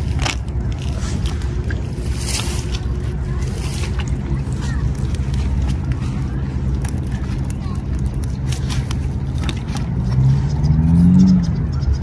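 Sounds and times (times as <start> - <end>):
motor engine running: 0.0 - 12.0.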